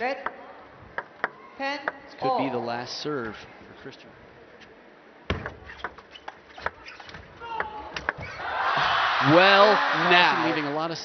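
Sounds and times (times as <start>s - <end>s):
crowd cheering: 7.5s - 11.0s.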